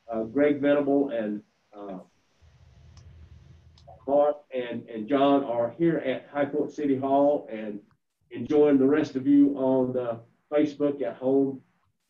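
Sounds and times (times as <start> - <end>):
faint low rumble: 1.8 - 4.2.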